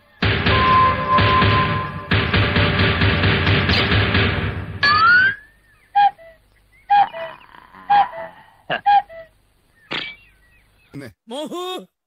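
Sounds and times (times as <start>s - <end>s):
background music: 0.2s - 5.1s.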